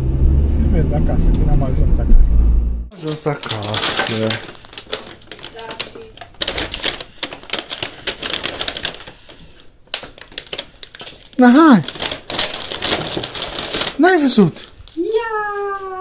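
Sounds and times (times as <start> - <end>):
paper bag rustling: 2.9 - 15.0.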